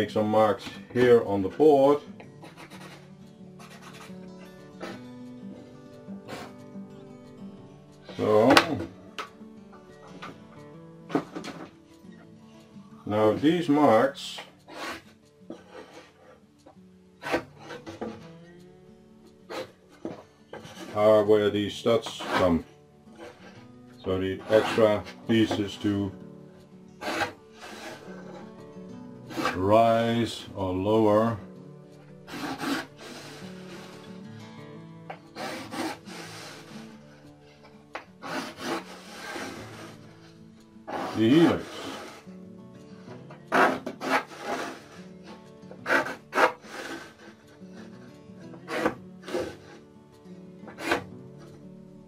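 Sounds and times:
faint background music: 0.0s - 52.0s
wooden straightedge sliding on board: 2.4s - 4.2s, 14.7s - 16.4s, 17.2s - 18.2s, 19.5s - 22.6s, 24.3s - 26.0s, 27.0s - 28.5s, 29.3s - 30.2s, 32.3s - 34.1s, 35.2s - 37.0s, 38.2s - 40.1s, 40.9s - 42.3s, 43.4s - 49.8s, 50.6s - 51.6s
pencil scratching on plywood: 2.4s - 5.0s, 14.7s - 16.4s, 17.2s - 18.2s, 19.5s - 21.3s, 22.0s - 23.6s, 24.3s - 25.7s, 27.0s - 28.6s, 29.2s - 29.6s, 32.3s - 34.1s, 35.3s - 37.1s, 38.2s - 40.2s, 40.9s - 42.3s, 43.4s - 49.8s, 50.6s - 51.6s.

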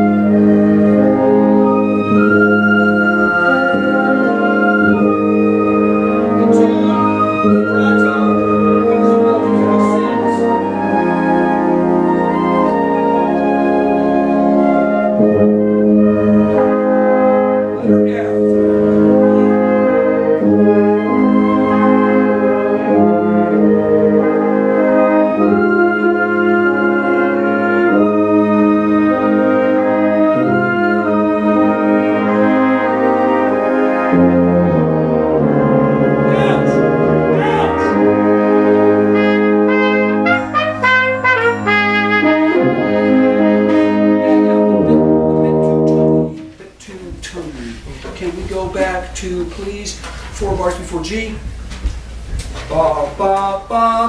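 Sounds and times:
wind ensemble playing: 0.0s - 54.0s.

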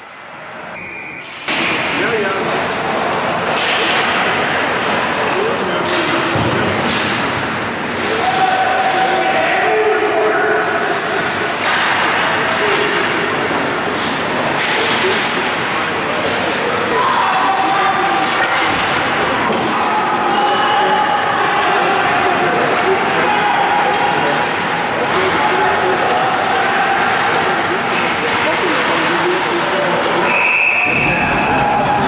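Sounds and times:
players and spectators shouting: 7.8s - 13.8s, 16.1s - 29.4s, 30.2s - 32.0s.

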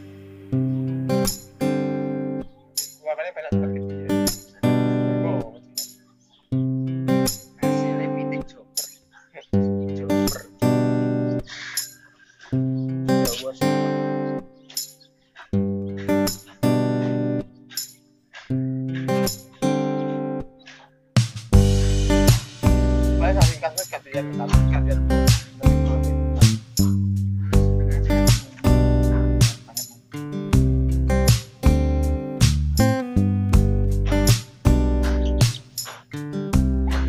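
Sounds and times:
acoustic guitar chords: 0.0s - 37.0s.

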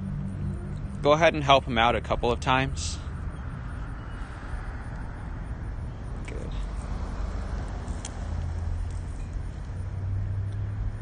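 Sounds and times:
car engine running: 0.0s - 11.0s
outdoor background noise: 0.0s - 11.0s.

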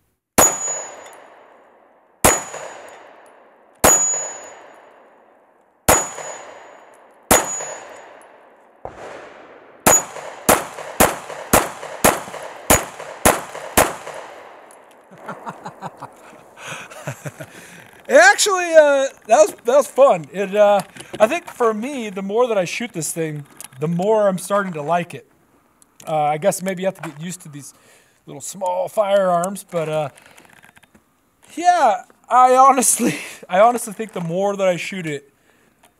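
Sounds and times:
steel targets ringing: 0.4s - 8.5s, 9.8s - 10.4s
pistol shots: 0.4s - 16.0s.

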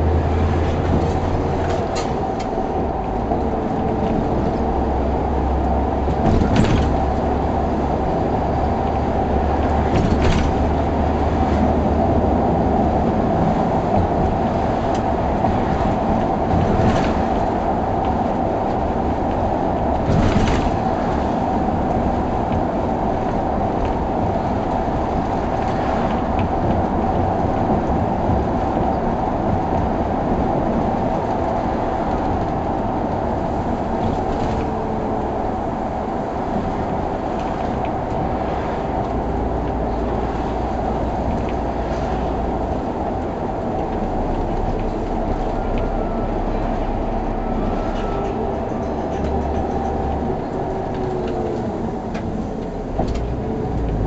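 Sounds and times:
bus engine and road noise: 0.0s - 54.0s.

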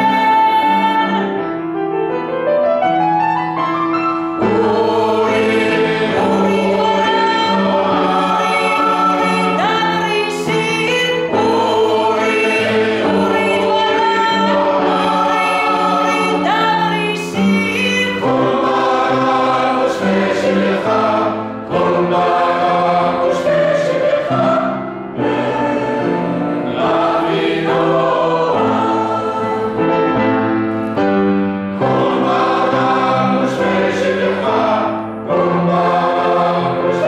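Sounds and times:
mixed choir singing: 0.0s - 1.3s, 4.3s - 30.3s, 31.7s - 37.0s.

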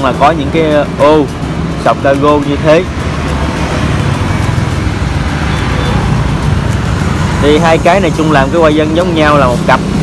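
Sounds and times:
passing vehicle rumble: 0.0s - 10.0s.

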